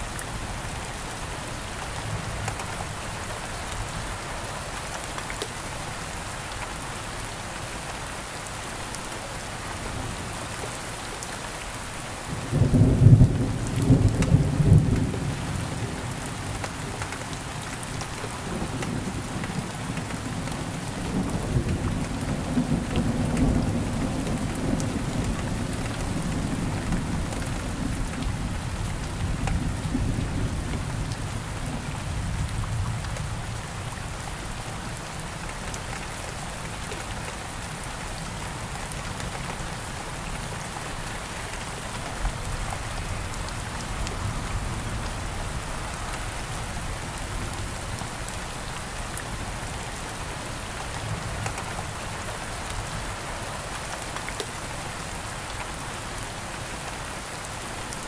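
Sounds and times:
steady rain falling: 0.0 - 58.0.

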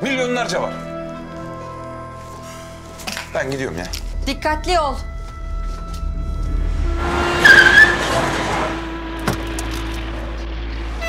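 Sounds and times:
background music: 0.0 - 11.0
car tyre squeal braking: 6.8 - 9.8.

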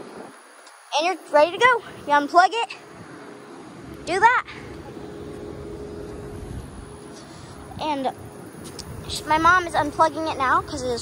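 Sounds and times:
faint steady hum: 0.0 - 11.0
low rumble: 2.8 - 11.0.

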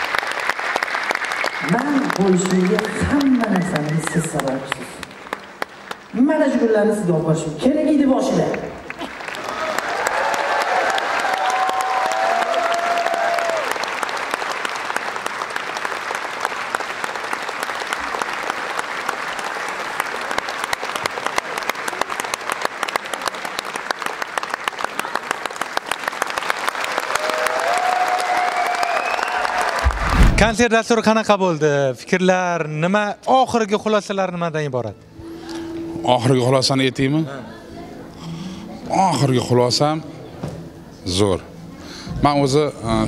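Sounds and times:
audience applauding: 0.0 - 6.6, 8.5 - 30.6.

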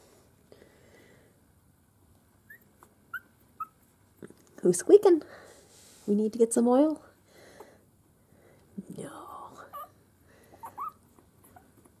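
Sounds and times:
puppies squeaking: 2.4 - 3.9, 10.5 - 12.0.

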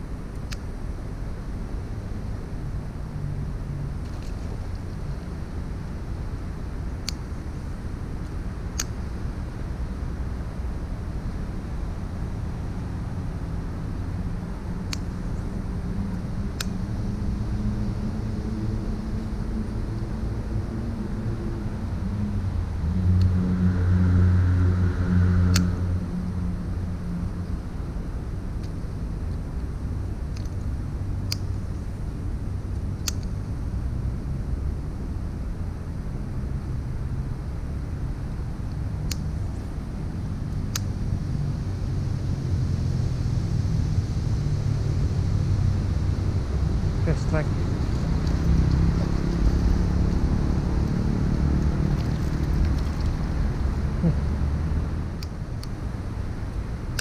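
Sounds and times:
vehicle engines running: 36.2 - 57.0.

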